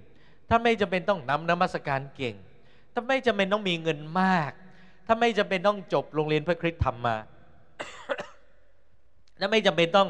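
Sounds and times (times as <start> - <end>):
man coughing into microphone: 7.8 - 8.6.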